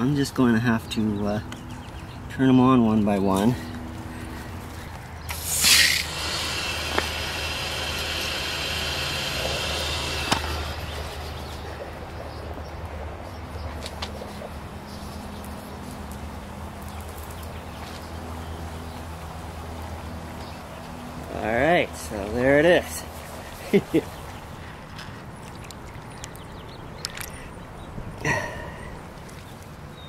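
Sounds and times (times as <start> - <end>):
water hissing through valve: 5.3 - 11.5
water running through pipe: 5.3 - 11.5.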